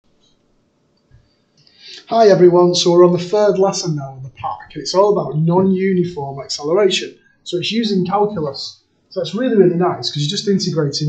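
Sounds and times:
person speaking: 0:01.8 - 0:11.0.

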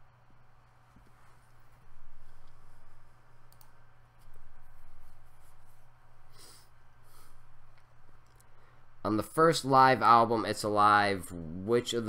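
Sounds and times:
low electrical hum: 0:00.0 - 0:12.0
computer mouse clicks: 0:02.2 - 0:05.2, 0:07.7 - 0:08.5.

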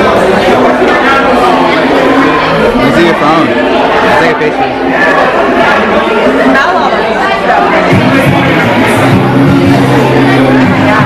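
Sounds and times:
diners chattering: 0:00.0 - 0:11.0.

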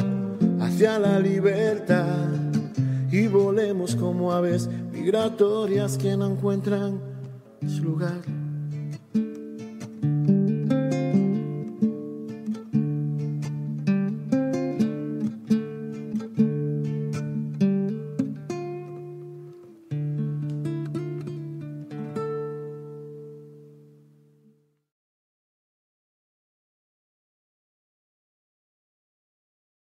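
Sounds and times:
classical guitar picking: 0:00.0 - 0:24.8.

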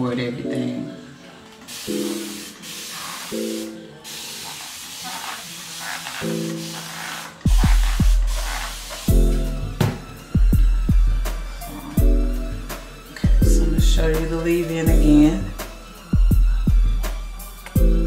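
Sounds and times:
background music with held notes: 0:00.0 - 0:18.0
spray bottle misting: 0:01.7 - 0:09.4
heavy bass beat: 0:07.5 - 0:12.2, 0:13.2 - 0:15.5.

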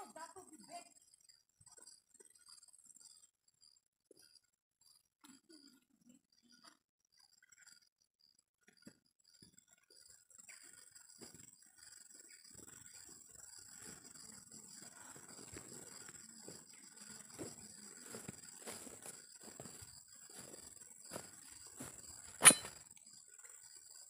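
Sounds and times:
high-pitched background whine: 0:10.1 - 0:23.2
footsteps in grass: 0:15.4 - 0:22.7
sharp click: 0:22.4 - 0:22.8.

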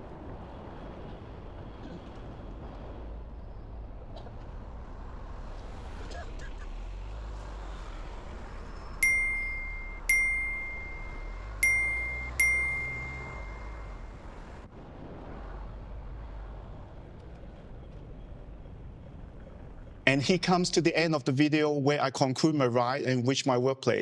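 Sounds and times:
bicycle bell ringing: 0:09.0 - 0:14.0.

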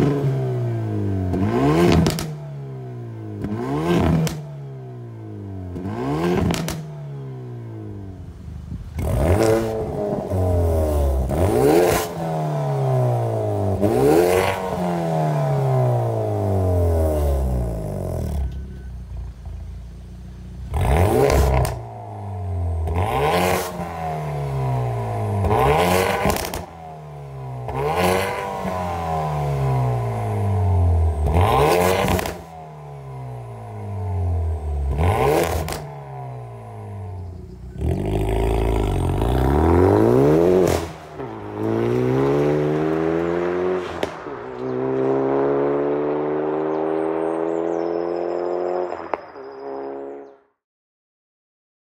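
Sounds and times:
car engine revving: 0:00.0 - 0:08.1, 0:09.0 - 0:18.6, 0:20.6 - 0:50.3
exhaust bangs: 0:20.7 - 0:47.6.

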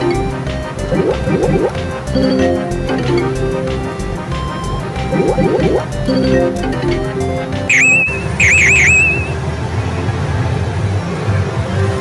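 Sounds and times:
low electronic tones: 0:00.0 - 0:03.7, 0:05.1 - 0:09.4
electronic swooping chirps: 0:00.8 - 0:03.4, 0:04.6 - 0:06.8, 0:07.7 - 0:09.4.

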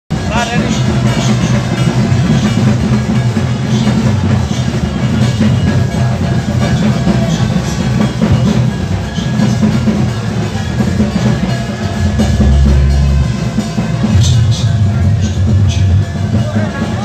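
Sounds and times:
loud music with heavy drumming: 0:00.1 - 0:17.0.

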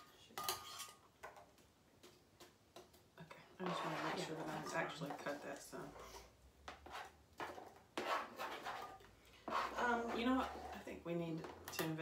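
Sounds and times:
knife scraping cutting board: 0:03.6 - 0:05.4, 0:06.0 - 0:11.6.

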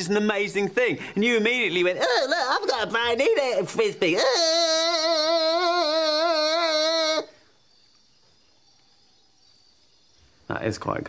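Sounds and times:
voice wailing with vibrato: 0:01.9 - 0:02.9, 0:04.0 - 0:07.4
faint hiss: 0:07.2 - 0:11.0.

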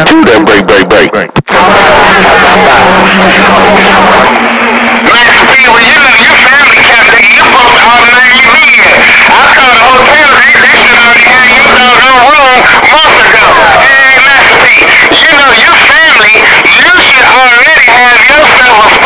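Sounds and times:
garbled warbling radio voices: 0:00.0 - 0:19.0
radio static: 0:00.0 - 0:19.0.

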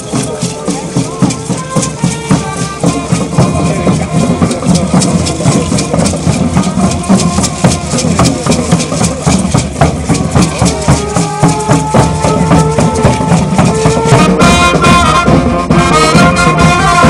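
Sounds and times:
drum beat: 0:00.0 - 0:17.0
maracas shaken fast: 0:00.0 - 0:17.0.

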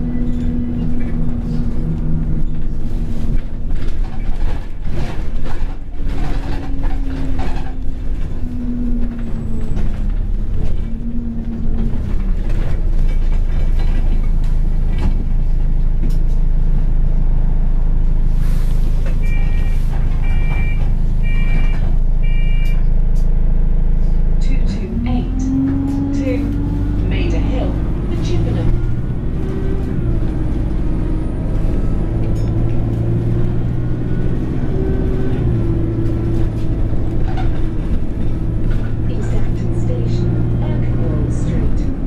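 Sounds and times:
bus body rattling: 0:00.0 - 0:42.0
bus diesel engine: 0:00.0 - 0:42.0
short beeps: 0:19.2 - 0:22.8.

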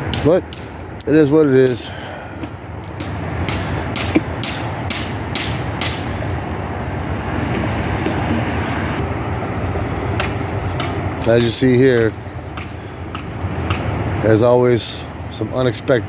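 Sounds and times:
low rumbling noise: 0:00.0 - 0:15.5.

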